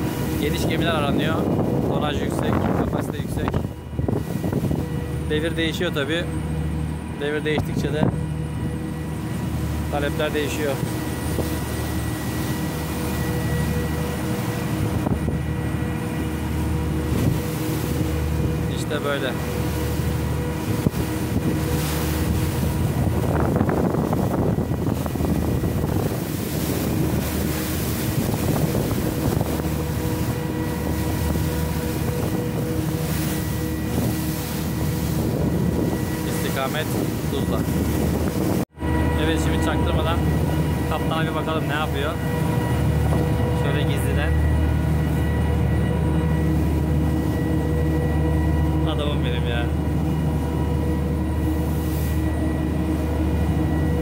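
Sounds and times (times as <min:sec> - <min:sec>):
wind buffeting microphone: 0:00.0 - 0:09.9, 0:10.8 - 0:48.8
boat diesel engines humming: 0:00.0 - 0:54.0.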